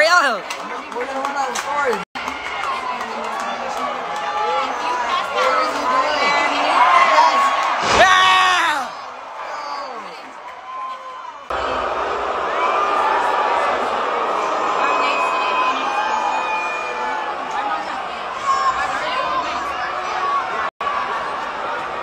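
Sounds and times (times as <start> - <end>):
crowd shouting and cheering: 0.0 - 22.0
din of crowd voices: 0.0 - 22.0
sharp slam: 7.8 - 8.7.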